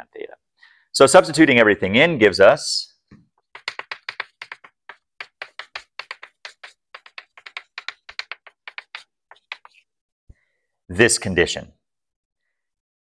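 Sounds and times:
chalk tapping and scratching: 3.4 - 9.9.

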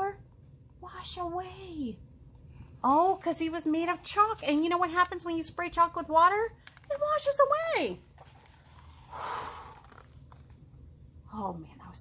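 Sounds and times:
woman exhaling sigh: 9.1 - 9.9.

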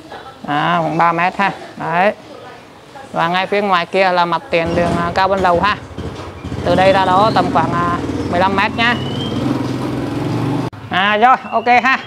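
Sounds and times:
motorbike engine idling: 4.5 - 11.2.

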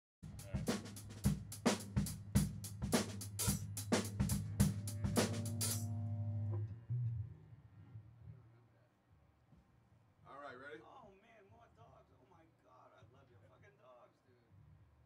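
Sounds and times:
drum kit playing: 0.2 - 6.6
low electric bass note: 4.4 - 7.3.

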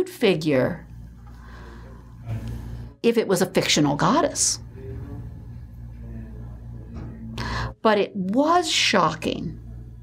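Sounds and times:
steady low hum: 0.0 - 10.0
woman breathing in: 1.3 - 2.0, 7.4 - 7.8.

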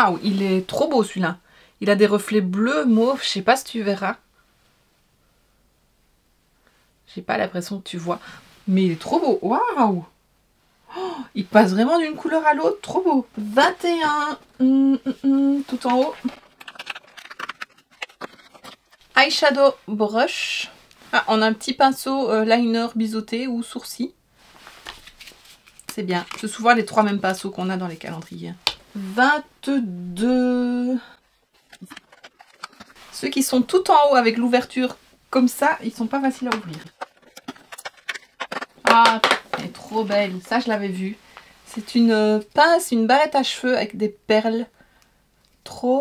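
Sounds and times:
packaging rustling: 15.7 - 19.1, 31.5 - 33.7, 36.4 - 39.7
cardboard clicks and scrapes: 15.8 - 19.0, 31.6 - 33.0, 36.4 - 39.7.

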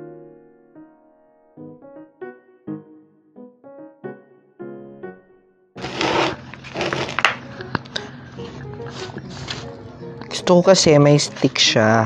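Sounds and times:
piano background music: 0.0 - 12.0
hands pressing potting soil: 5.8 - 7.5.

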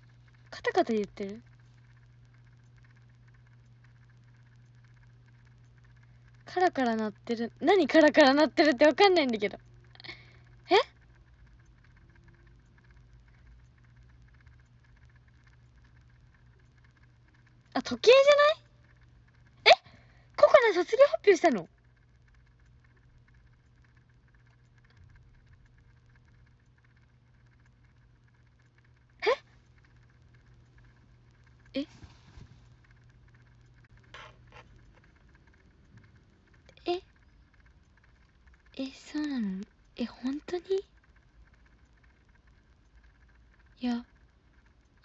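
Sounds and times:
faint rapid clicking rattle: 0.0 - 45.0
low steady hum: 0.0 - 45.0
clocks clicking: 32.7 - 45.0.

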